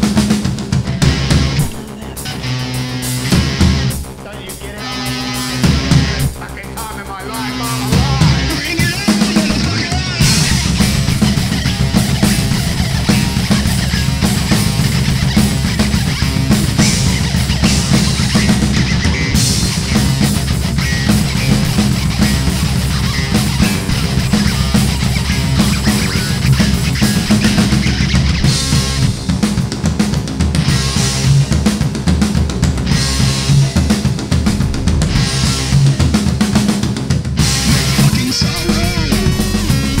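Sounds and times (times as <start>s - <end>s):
metal song with drums and guitars: 0.0s - 40.0s.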